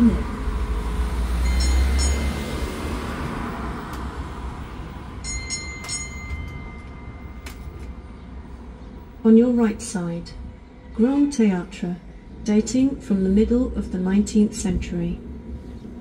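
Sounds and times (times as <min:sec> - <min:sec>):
road train rumble: 0:00.0 - 0:16.0.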